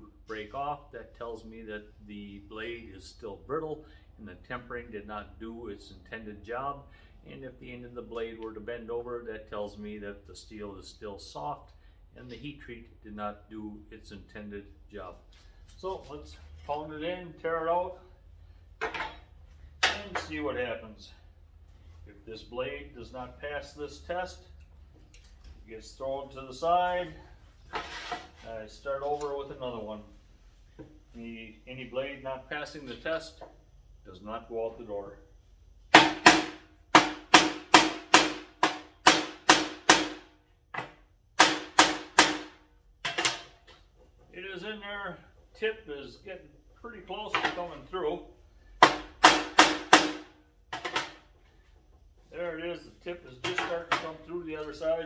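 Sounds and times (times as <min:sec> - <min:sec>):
tools rustling on board: 0:27.2 - 0:29.4.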